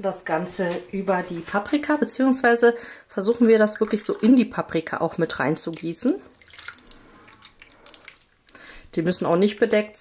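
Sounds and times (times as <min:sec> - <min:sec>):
sauce trickling into pot: 0:03.5 - 0:10.0.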